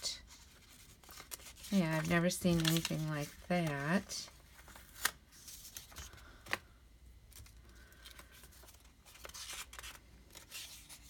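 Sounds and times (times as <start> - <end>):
paper rustling: 0.2 - 6.6, 7.3 - 11.0.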